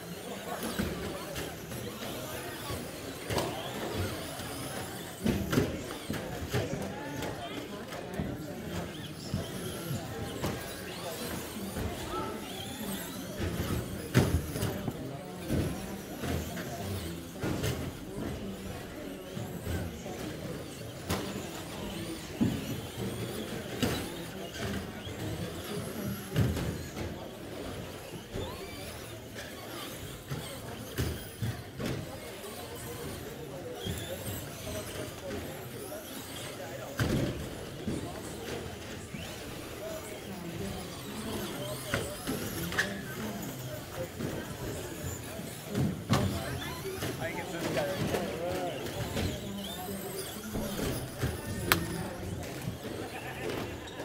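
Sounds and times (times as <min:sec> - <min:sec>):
rc trucks running: 0:00.0 - 0:54.0
voices in a hall: 0:00.0 - 0:54.0.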